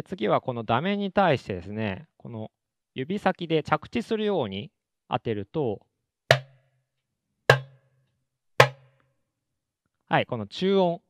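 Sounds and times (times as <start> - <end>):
goblet drum strokes: 6.3 - 6.5, 7.5 - 7.8, 8.6 - 8.8.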